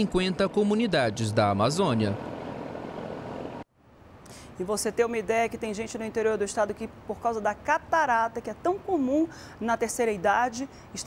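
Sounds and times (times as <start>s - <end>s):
ship under way noise: 0.0s - 3.7s.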